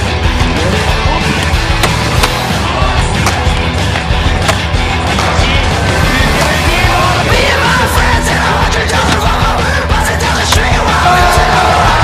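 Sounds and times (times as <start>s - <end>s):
loud rock music: 0.0s - 12.0s
skateboard clacks: 1.2s - 2.5s, 3.1s - 5.8s.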